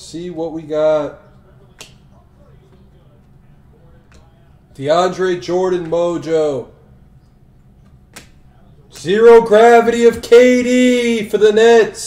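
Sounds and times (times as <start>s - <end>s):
trading cards clicking: 7.8s - 9.1s.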